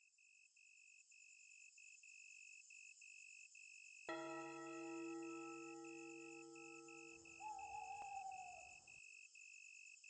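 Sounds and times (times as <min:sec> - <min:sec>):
crickets chirping: 0:00.2 - 0:10.0.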